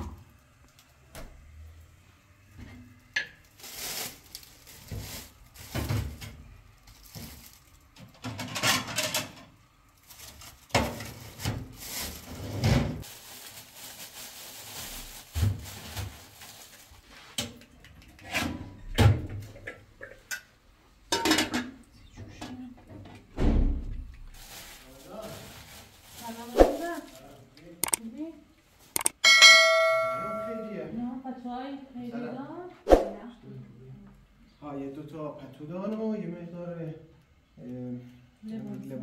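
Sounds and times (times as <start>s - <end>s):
plastic bag rustling: 3.4s - 8.0s, 9.8s - 17.3s, 24.2s - 27.4s
bright bell ding: 29.2s - 30.8s.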